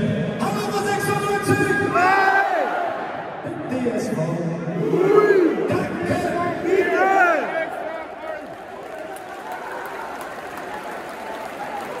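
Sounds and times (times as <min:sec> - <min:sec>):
crowd shouting chant-like calls: 0:04.8 - 0:08.0
scattered clapping: 0:08.3 - 0:12.0.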